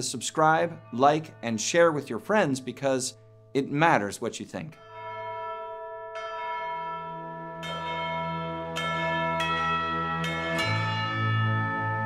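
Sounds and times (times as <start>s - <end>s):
bells ringing: 0.0s - 12.0s.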